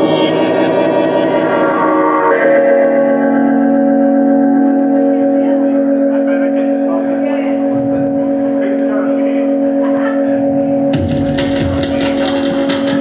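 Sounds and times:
live band slow held chords: 0.0 - 13.0.

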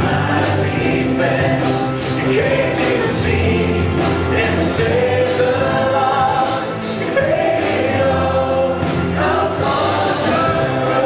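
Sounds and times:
drums: 0.0 - 11.0
keyboard: 0.0 - 11.0
voices singing together: 0.0 - 11.0.

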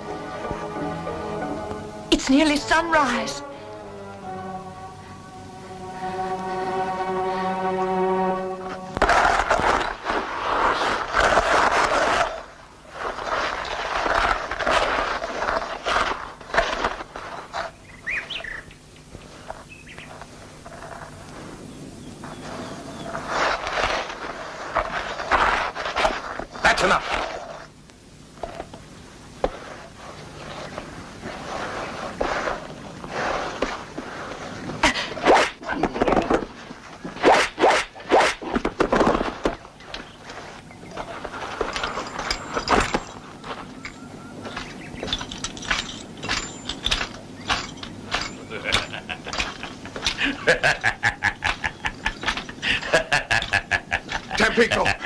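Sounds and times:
sharp cracks and knocks: 35.2 - 40.1
man laughing heartily: 48.5 - 55.0.

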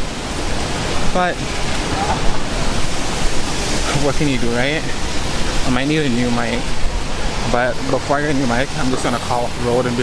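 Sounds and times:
loud city street rushing noise: 0.0 - 10.0.

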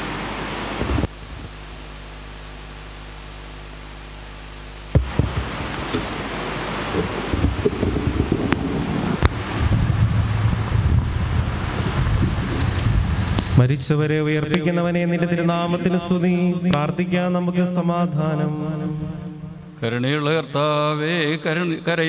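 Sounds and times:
steady hiss: 0.0 - 17.2
low hum: 0.0 - 20.0
loud rough rumbling: 4.9 - 13.8.

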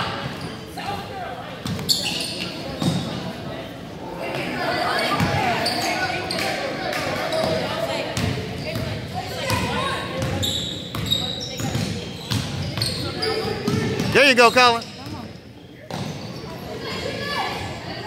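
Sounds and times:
spectators' voices echoing: 0.0 - 10.5, 11.4 - 15.4.

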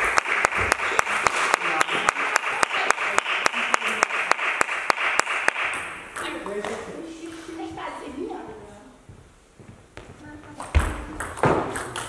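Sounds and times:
spectators applauding: 0.0 - 6.0
fast even clapping: 0.0 - 6.8.

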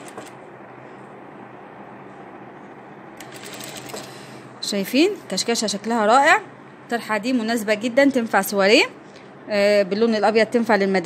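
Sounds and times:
sewing machine running: 0.0 - 0.4, 3.2 - 4.2.

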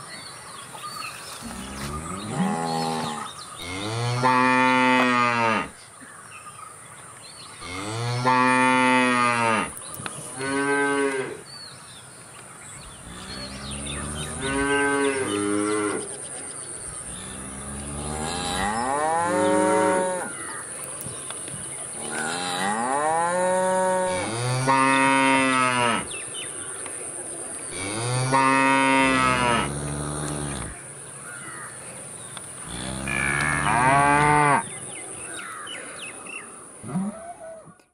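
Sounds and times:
cattle mooing: 17.2 - 20.3, 27.8 - 30.8, 32.7 - 34.6.

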